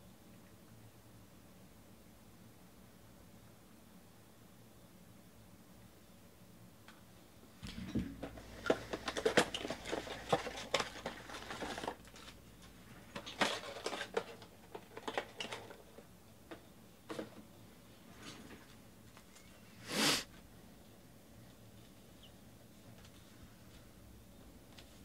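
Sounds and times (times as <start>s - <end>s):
packs tapping on table: 7.6s - 15.7s
foil packs crinkling: 8.2s - 16.1s.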